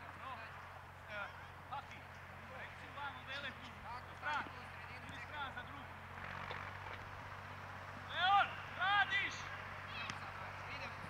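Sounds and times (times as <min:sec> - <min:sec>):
distant shouts of young players: 0:08.0 - 0:10.3.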